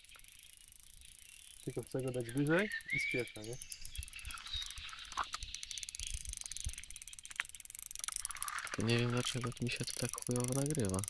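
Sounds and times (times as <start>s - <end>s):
fishing reel clicks: 0.0s - 11.0s
fishing reel ticking: 0.0s - 11.0s.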